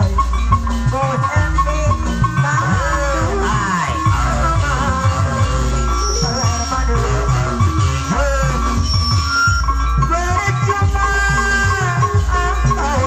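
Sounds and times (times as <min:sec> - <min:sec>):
live band music over sound system: 0:00.0 - 0:13.0.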